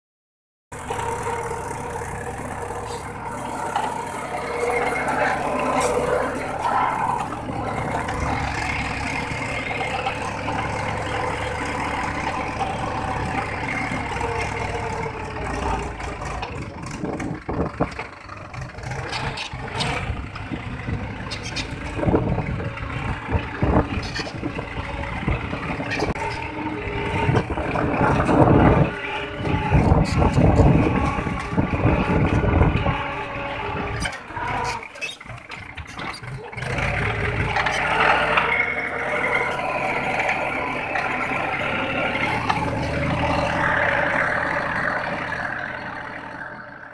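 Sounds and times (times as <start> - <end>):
tractor diesel engine under load: 0.7 - 46.9.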